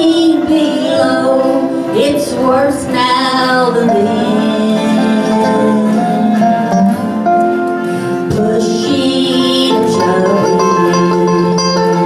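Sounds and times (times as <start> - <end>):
woman singing through microphone: 0.0 - 7.2, 8.2 - 12.0
live band accompaniment: 0.0 - 12.0
upright bass: 0.0 - 12.0.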